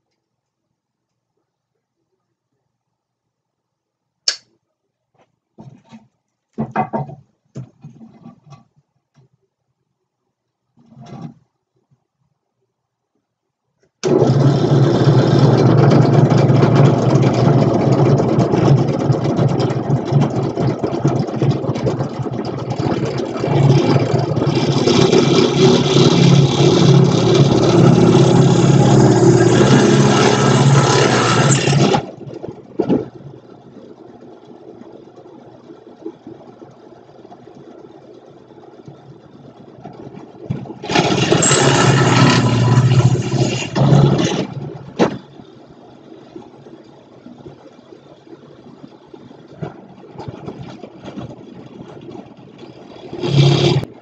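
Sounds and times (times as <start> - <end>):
drill press boring into wood: 14.0 - 18.8, 23.5 - 32.2, 40.8 - 44.7, 53.2 - 53.9.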